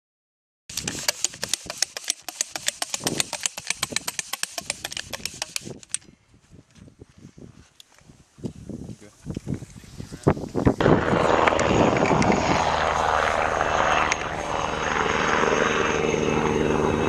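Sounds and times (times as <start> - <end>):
rapid clicking and tapping: 0.7 - 5.9.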